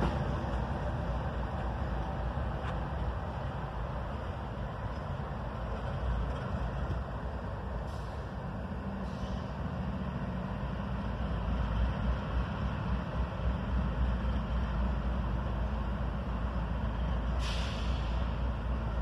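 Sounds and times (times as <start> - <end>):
diesel locomotive engine rumbling: 0.0 - 19.0.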